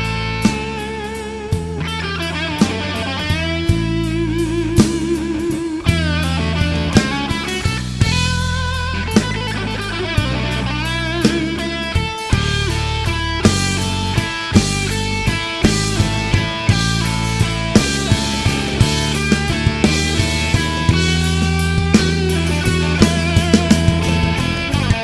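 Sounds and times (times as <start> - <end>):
bass guitar: 0.0 - 25.0
drum kit: 0.0 - 25.0
electric guitar lead: 0.0 - 25.0.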